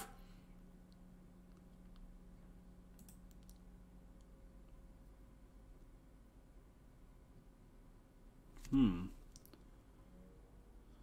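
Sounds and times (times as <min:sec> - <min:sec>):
person humming: 0:08.7 - 0:09.2.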